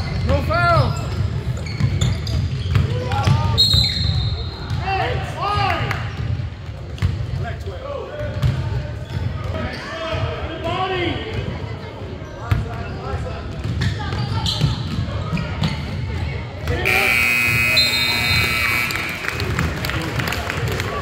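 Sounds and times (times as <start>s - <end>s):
voices: 13.8s - 20.8s
scoreboard buzzer: 16.9s - 19.5s.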